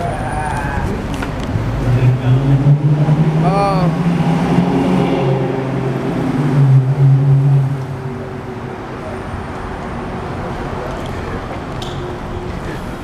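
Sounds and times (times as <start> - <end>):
road noise: 0.0 - 13.0
vehicle engine droning: 0.0 - 13.0.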